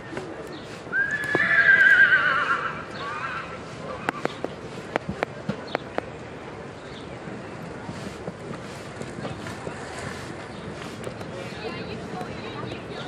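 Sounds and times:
horse whinnying: 0:00.9 - 0:04.1.

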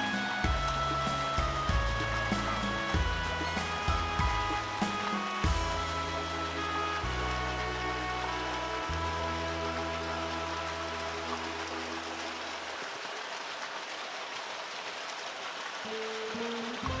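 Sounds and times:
low bass notes: 0:00.0 - 0:12.6
sustained chords music: 0:00.0 - 0:12.7
steady rushing hiss: 0:00.0 - 0:17.0.

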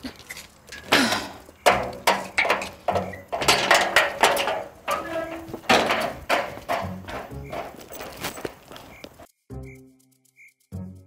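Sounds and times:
background music with low tones: 0:05.3 - 0:11.0
high heels clicking on pavement: 0:06.5 - 0:09.3.

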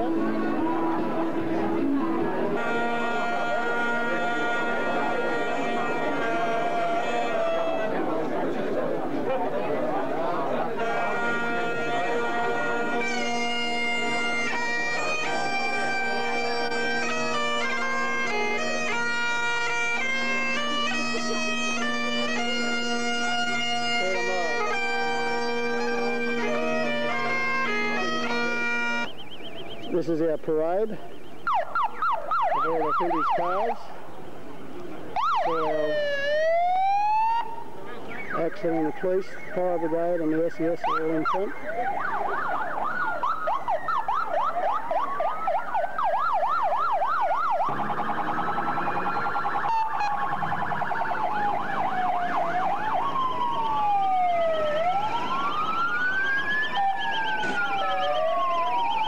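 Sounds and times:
bagpipes playing: 0:00.0 - 0:08.4, 0:10.2 - 0:30.8, 0:35.2 - 0:37.7, 0:38.4 - 0:59.0
emergency vehicle sirens: 0:00.0 - 0:34.0, 0:35.0 - 0:59.0.

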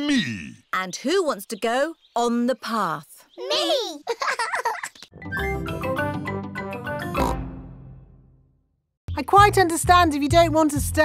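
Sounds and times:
cartoon theme tune chord: 0:05.2 - 0:08.6
cartoon pig oink: 0:07.1 - 0:07.5.

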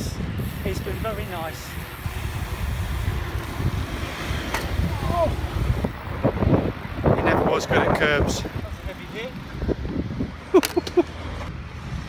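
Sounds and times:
wind buffeting microphone: 0:00.0 - 0:10.6, 0:11.3 - 0:12.0.

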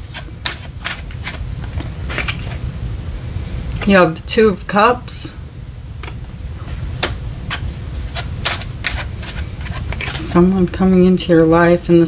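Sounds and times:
card flipped over: 0:00.1 - 0:02.6
card scraping on card: 0:07.5 - 0:10.4.

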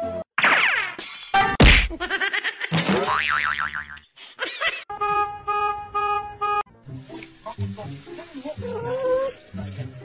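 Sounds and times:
sharp whacks: 0:00.4 - 0:02.0.

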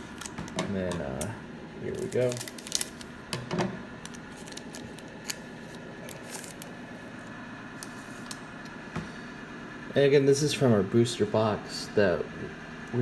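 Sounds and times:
foil pack crinkling: 0:01.8 - 0:03.2, 0:04.0 - 0:06.8.

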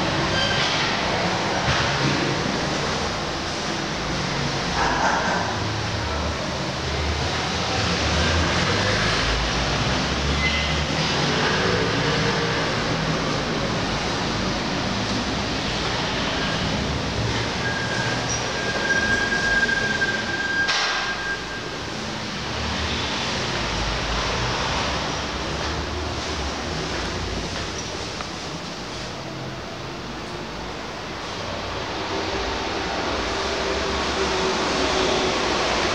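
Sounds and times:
street traffic rumble: 0:00.0 - 0:35.9.

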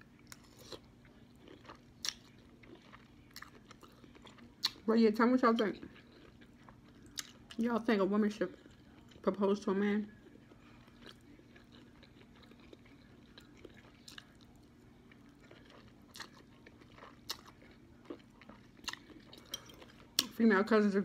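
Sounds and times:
faint steady hum: 0:00.0 - 0:21.0
person chewing: 0:00.1 - 0:04.8, 0:05.8 - 0:07.6, 0:08.5 - 0:09.2, 0:10.2 - 0:20.3.

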